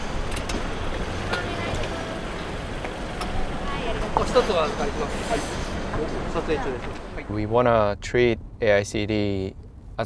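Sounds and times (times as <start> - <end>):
traffic rumble: 0.0 - 10.0.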